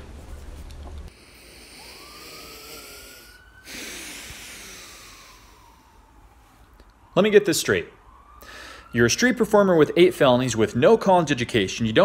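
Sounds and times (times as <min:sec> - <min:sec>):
man sighing heavily: 0:01.1 - 0:06.0, 0:08.4 - 0:08.9.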